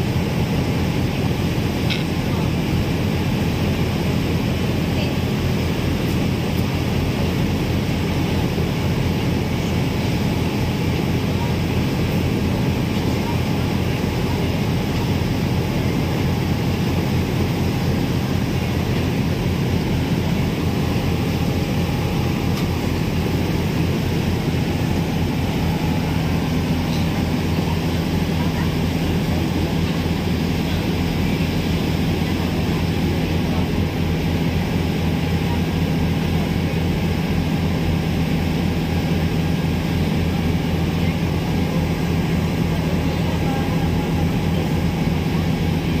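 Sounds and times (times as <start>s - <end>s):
ferry engines droning: 0.0s - 46.0s.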